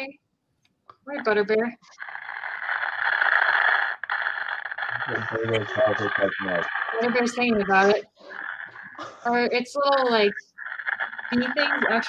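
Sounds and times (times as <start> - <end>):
radio static hiss: 1.2 - 12.0
voices through radio static: 4.0 - 12.0.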